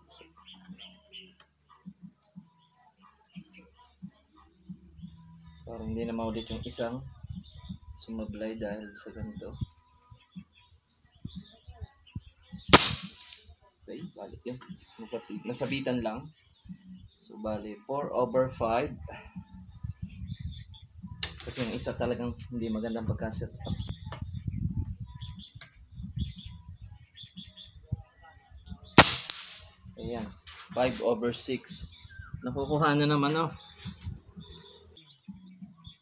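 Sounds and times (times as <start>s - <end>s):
crickets shrilling: 0.0s - 36.0s
air rifle shot: 12.7s - 13.4s, 29.0s - 29.7s.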